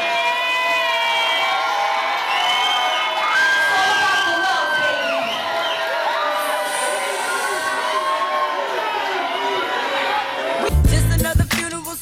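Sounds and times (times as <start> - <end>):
audience cheering and screaming: 0.0 - 10.9
long held shriek: 2.4 - 8.9.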